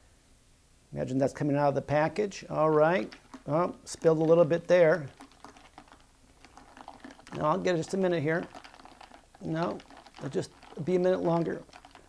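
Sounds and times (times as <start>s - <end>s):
stirrer tapping ice and glass: 2.8s - 12.0s.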